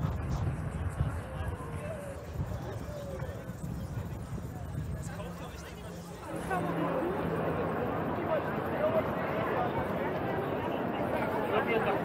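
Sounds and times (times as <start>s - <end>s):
wind on microphone: 0.0s - 7.4s
bicycle rumble: 0.0s - 12.0s
chatter of voices: 0.0s - 12.0s.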